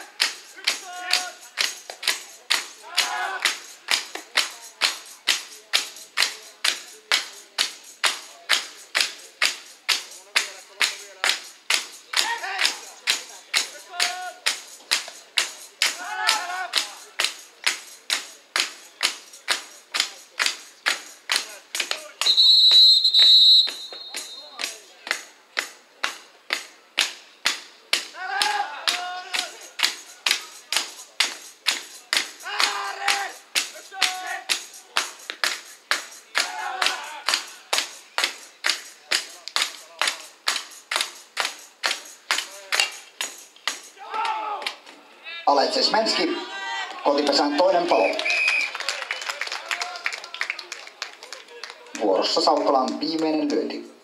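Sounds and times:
crowd beating rhythm: 0.0s - 44.9s
crowd chanting: 15.8s - 17.0s, 36.3s - 37.8s
loud whistle blast: 22.2s - 24.6s, 48.0s - 48.8s.

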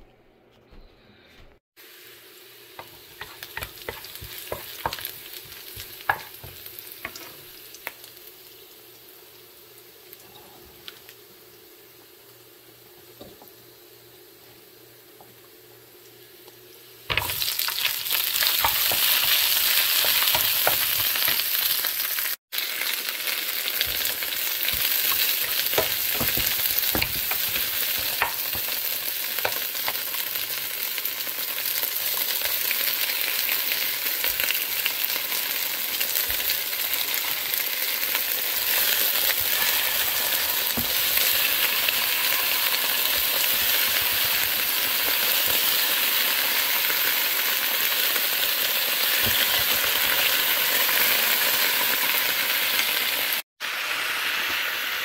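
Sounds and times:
oil sizzling in frying pan: 1.8s - 55.0s
spatula tapping and scraping pan: 2.8s - 7.4s, 18.4s - 21.4s, 23.8s - 28.8s.

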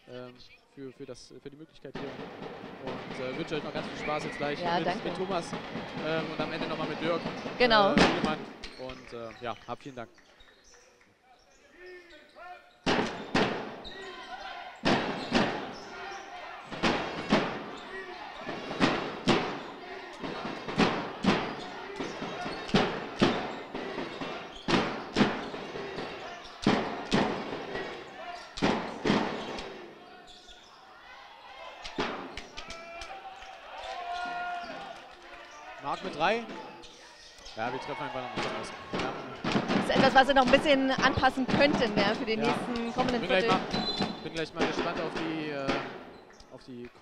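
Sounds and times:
crowd voices: 1.9s - 10.0s, 11.5s - 47.0s
basketball bouncing on court: 2.0s - 8.9s, 12.9s - 14.1s, 14.8s - 29.9s, 32.0s - 32.5s, 38.3s - 46.4s
crowd drumming thuds: 2.0s - 9.5s, 12.8s - 30.2s, 31.8s - 36.8s, 37.5s - 46.5s.

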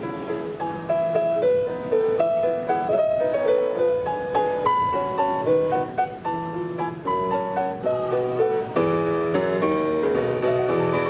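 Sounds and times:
solo grand piano: 0.0s - 11.0s.

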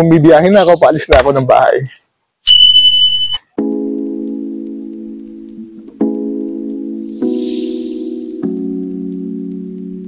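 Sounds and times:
high-pitched electronic beep: 2.5s - 3.4s
low chord background music: 3.6s - 10.0s.

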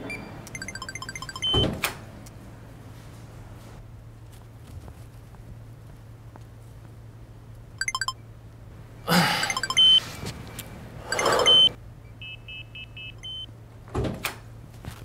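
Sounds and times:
short beeps: 0.1s - 1.6s, 7.8s - 8.2s, 9.4s - 10.1s, 11.0s - 13.5s
keypad door lock beeping: 0.1s - 1.7s, 7.8s - 8.1s, 9.5s - 10.1s, 11.1s - 13.5s.

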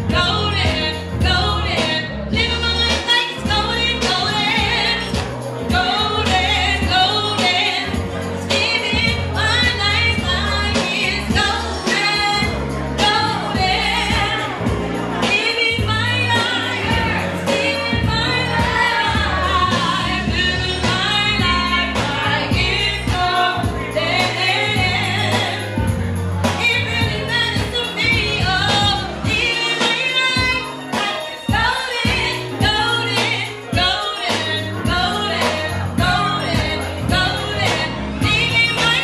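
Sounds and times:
backing music with bass: 0.0s - 39.0s
woman singing into microphone: 0.0s - 39.0s.

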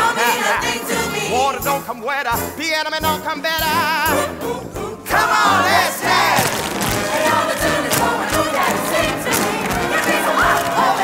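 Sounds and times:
jazz orchestra music: 0.9s - 10.3s.

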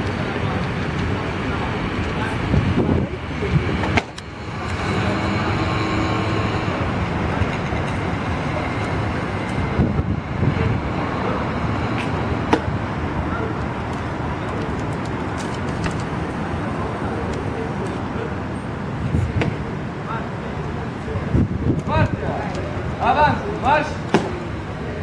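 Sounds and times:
faint voices: 0.0s - 25.0s
street traffic: 0.0s - 25.0s.

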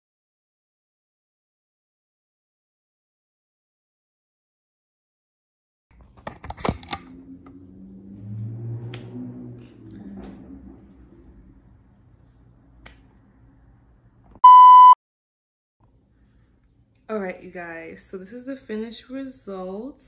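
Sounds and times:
loud electronic beep: 14.4s - 15.0s.

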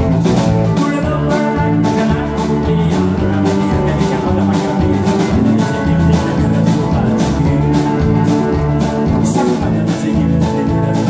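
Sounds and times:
drum kit steady beat: 0.0s - 11.0s
electric bass: 0.0s - 11.0s
electric guitars: 0.0s - 11.0s.

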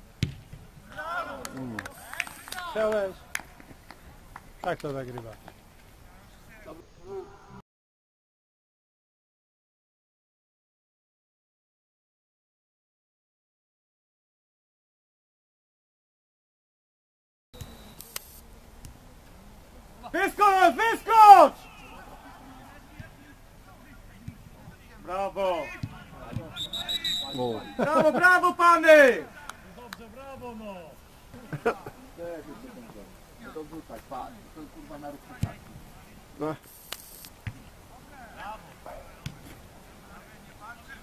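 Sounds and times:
low open-air background noise: 0.0s - 7.6s, 17.6s - 41.0s
football being kicked: 0.2s - 1.0s, 35.4s - 35.7s
short sharp clicks: 17.6s - 18.4s, 36.7s - 37.4s
player shouting: 20.1s - 22.8s, 26.5s - 29.4s
brief hiss: 36.6s - 37.4s.

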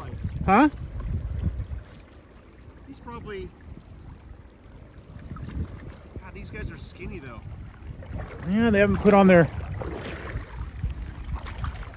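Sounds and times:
shallow river flowing: 0.0s - 11.9s
wind buffeting microphone: 0.0s - 11.9s.

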